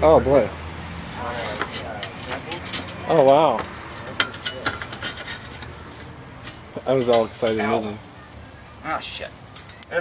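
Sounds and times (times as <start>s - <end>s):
metal spatula scraping grill grate: 0.8s - 10.0s.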